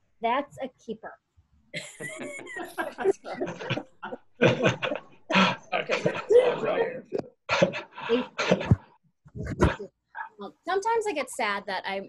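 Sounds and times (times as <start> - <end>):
audience laughing over video call: 1.8 - 9.8.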